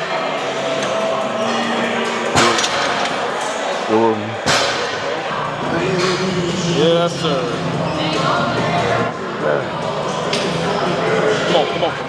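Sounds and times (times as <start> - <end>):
weight room din: 0.0 - 12.0
sharp knocks: 4.4 - 5.1.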